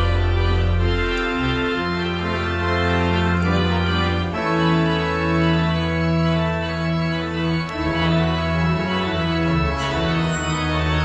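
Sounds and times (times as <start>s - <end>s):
pipe organ playing chords: 0.0s - 11.0s.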